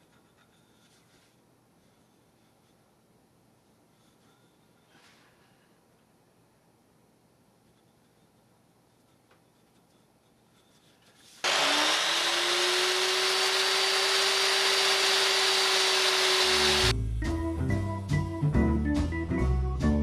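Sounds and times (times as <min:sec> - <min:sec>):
electric miter saw whining: 0:11.4 - 0:16.9.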